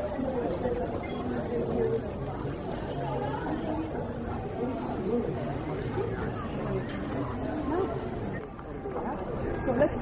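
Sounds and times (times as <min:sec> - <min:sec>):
chatter of people talking: 0:00.0 - 0:10.0.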